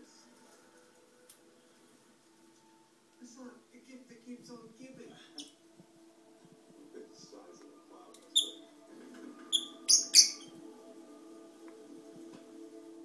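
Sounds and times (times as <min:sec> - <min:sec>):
high-pitched bird chirps: 0:08.3 - 0:08.6, 0:09.5 - 0:10.5.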